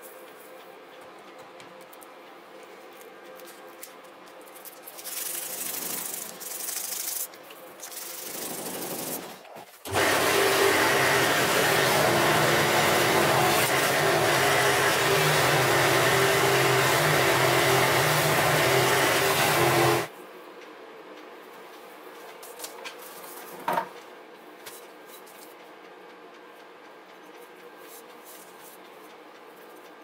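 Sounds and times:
buffing wheel motor hum and hiss: 9.9s - 20.1s.

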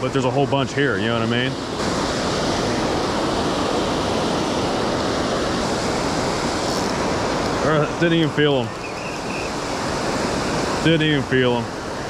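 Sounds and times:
water rushing over a spillway: 0.0s - 12.0s.

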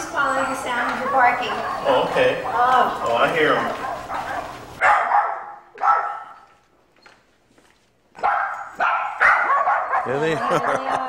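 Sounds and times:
dogs barking: 0.6s - 6.6s, 8.1s - 11.0s.

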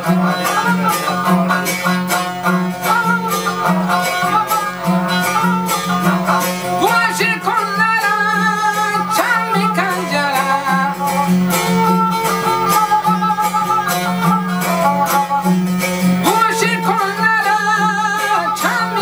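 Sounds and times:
bowed fiddle melody: 0.0s - 19.0s
man singing: 0.0s - 19.0s
strummed lute drone: 0.0s - 19.0s.

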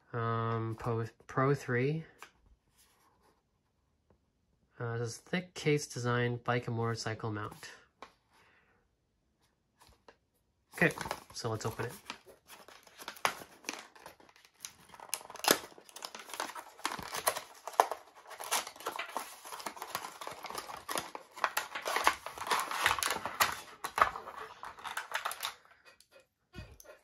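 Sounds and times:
cardboard scraping: 10.8s - 25.5s
plastic crinkling: 10.8s - 25.6s
clicks and rustles: 10.8s - 26.1s.

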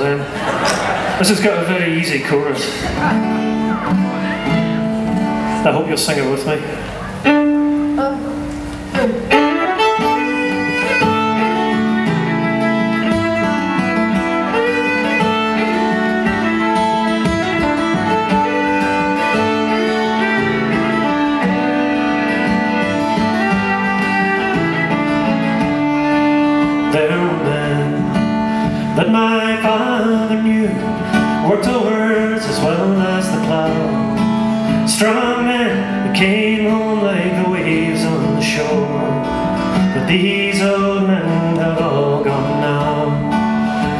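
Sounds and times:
strummed acoustic guitar: 0.0s - 43.9s
fiddle melody: 1.1s - 43.9s
uilleann pipes long notes: 7.1s - 43.9s.

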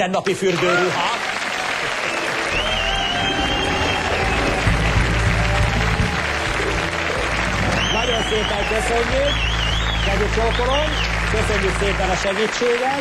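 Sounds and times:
studio audience applauding: 0.2s - 13.0s
band playing music: 2.4s - 12.0s.

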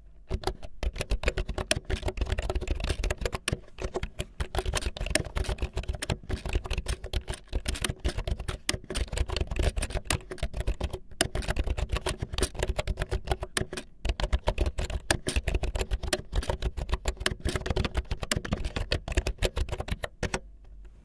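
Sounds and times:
fast typing on mechanical keyboard: 0.3s - 20.4s.

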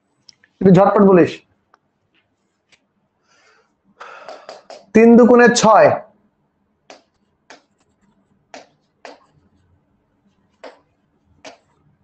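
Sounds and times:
pen tapping writing board: 8.6s - 9.4s.

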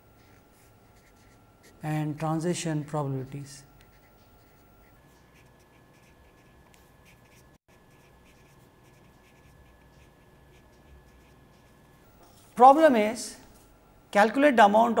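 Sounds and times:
low room hum: 0.0s - 15.0s
marker pen scratching on paper: 0.2s - 1.8s, 3.9s - 12.4s.

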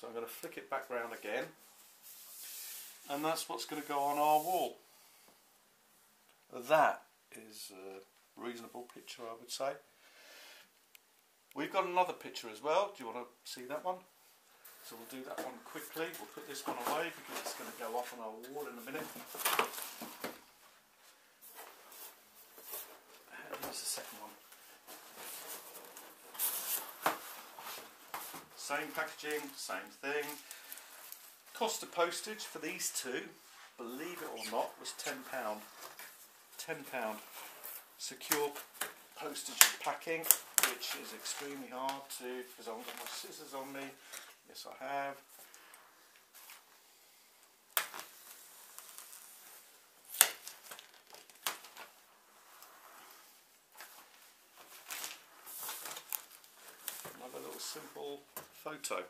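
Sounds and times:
plastic wrap crinkling: 21.5s - 33.0s, 33.8s - 44.4s, 47.4s - 58.9s.

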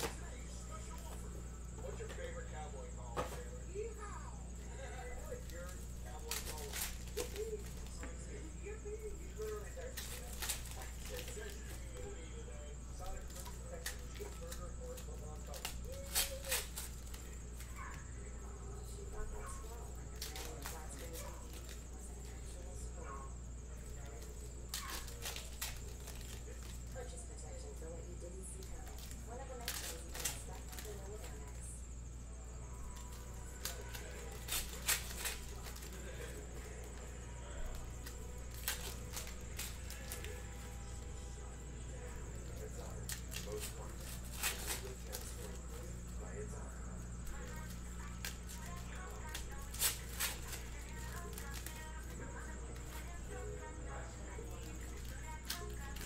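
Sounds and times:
steady low hum: 0.0s - 56.0s
foil wrappers crinkling and tearing: 4.6s - 31.7s, 32.8s - 46.4s, 47.1s - 56.0s.

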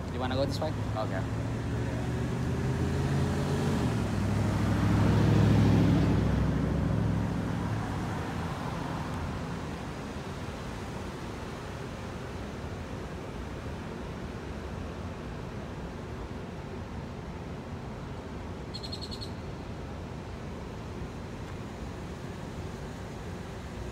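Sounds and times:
hum of city traffic: 0.0s - 23.9s
car passing close by: 0.3s - 10.0s.

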